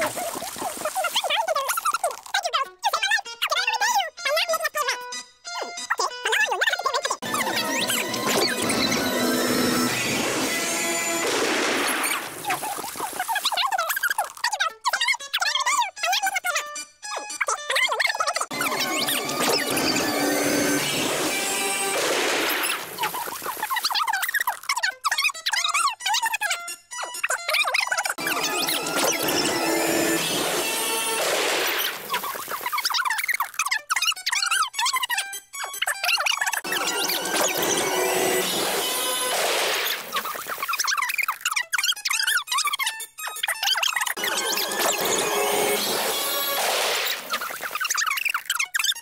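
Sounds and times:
music: 0:00.3 - 0:11.5, 0:13.4 - 0:39.5, 0:40.4 - 0:49.0
squeaky cartoon giggling: 0:13.4 - 0:19.2, 0:23.1 - 0:28.8, 0:32.1 - 0:37.1, 0:40.2 - 0:44.6.

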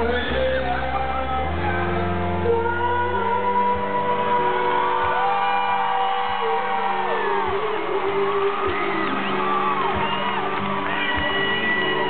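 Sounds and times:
person singing: 0:00.0 - 0:12.0
crowd whooping: 0:04.4 - 0:12.0.

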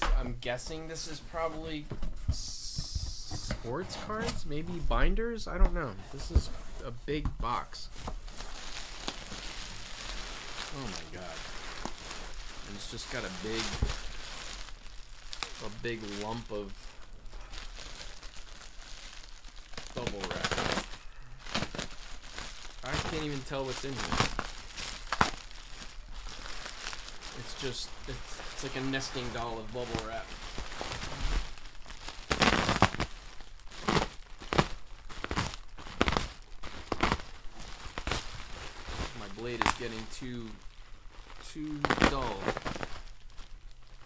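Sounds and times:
bubble wrap crinkling: 0:00.5 - 0:44.0.

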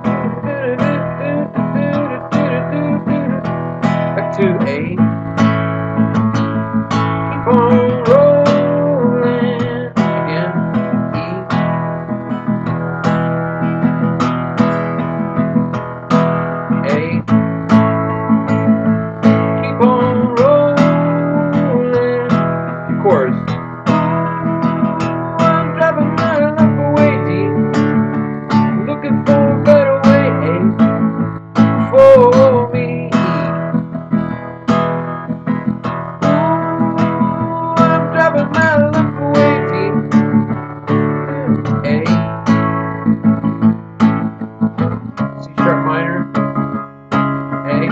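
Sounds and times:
man singing: 0:00.0 - 0:05.1, 0:07.3 - 0:11.7, 0:16.7 - 0:17.3, 0:19.6 - 0:31.2, 0:31.8 - 0:33.9, 0:36.2 - 0:42.6, 0:45.4 - 0:46.4, 0:47.6 - 0:47.9
acoustic guitar strumming: 0:00.0 - 0:47.9.

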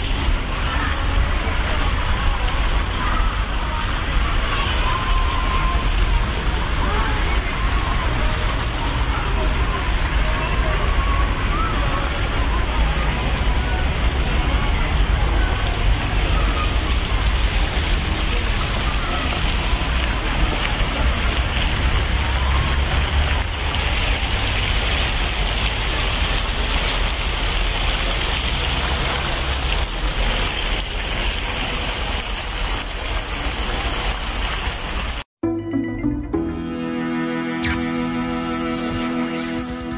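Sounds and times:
water fountains splashing: 0:00.0 - 0:35.3
music: 0:35.4 - 0:39.9.

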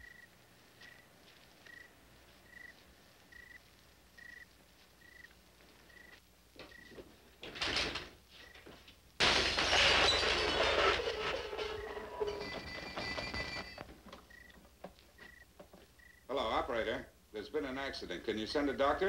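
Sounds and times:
crickets chirping: 0:00.0 - 0:07.0, 0:13.4 - 0:16.5
door banging open: 0:07.5 - 0:08.2, 0:09.2 - 0:13.7.

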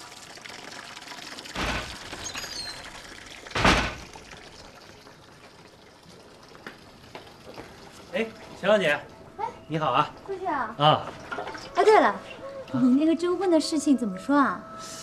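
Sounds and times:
water splashing in basin: 0:00.0 - 0:08.7
water running from tap: 0:00.0 - 0:12.1.

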